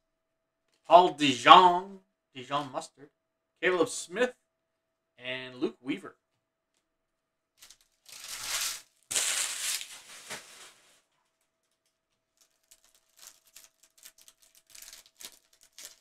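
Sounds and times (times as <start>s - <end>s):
card pack wrapper ripping: 7.6s - 10.9s, 12.4s - 16.0s.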